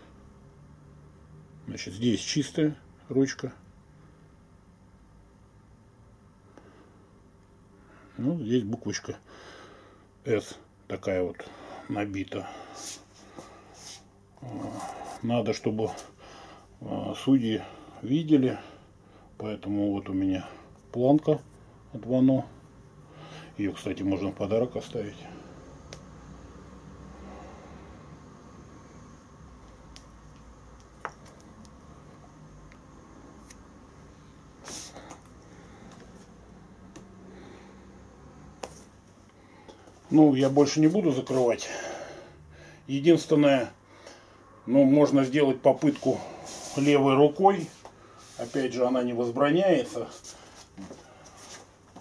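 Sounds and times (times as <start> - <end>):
low room hum: 0.0 - 52.0.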